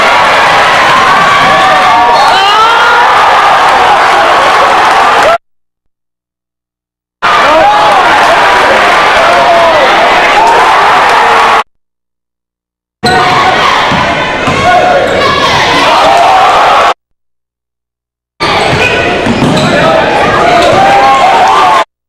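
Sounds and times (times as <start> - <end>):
crowd shouting: 0.0 - 5.4, 7.2 - 11.7, 13.0 - 17.0, 18.4 - 21.9.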